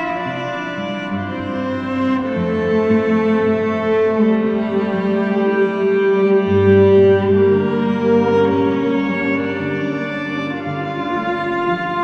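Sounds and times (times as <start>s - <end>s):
cello playing slow melody: 0.0s - 12.0s
lower bowed parts: 0.0s - 12.0s.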